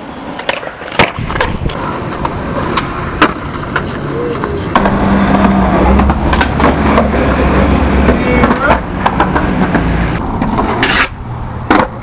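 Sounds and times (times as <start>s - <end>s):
skateboard clacks: 0.0s - 12.0s
skateboard wheels rolling on concrete: 0.0s - 12.0s.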